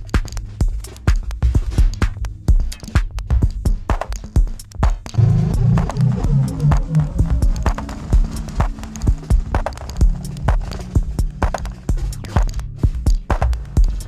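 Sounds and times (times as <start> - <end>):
clicking percussion: 0.0 - 14.0
drum machine kick: 0.0 - 14.0
low stepping bass: 5.0 - 14.0.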